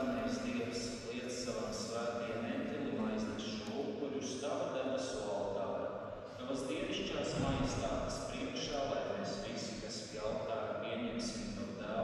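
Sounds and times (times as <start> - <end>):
man speaking into a microphone: 0.0 - 12.0.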